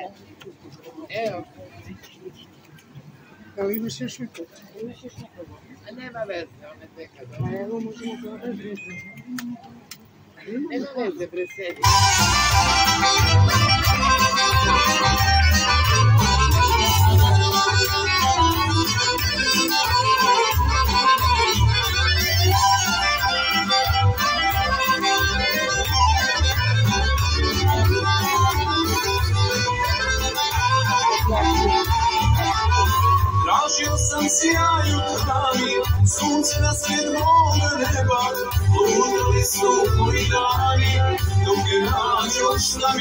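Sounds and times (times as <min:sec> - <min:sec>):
accordion playing folk tune: 0:11.7 - 0:43.0.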